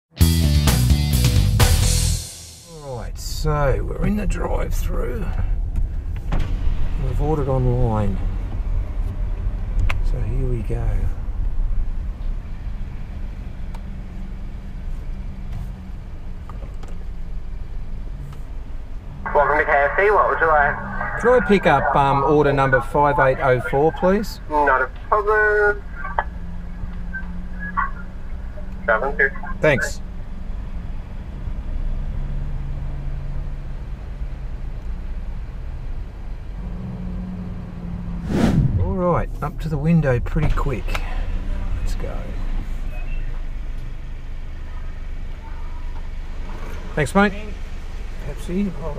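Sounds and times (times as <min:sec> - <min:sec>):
car engine and road hum: 0:01.6 - 0:48.9.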